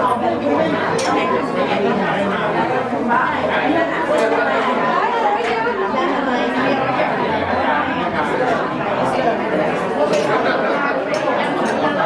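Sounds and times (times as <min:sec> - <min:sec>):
crowd talking in a hall: 0:00.0 - 0:12.0.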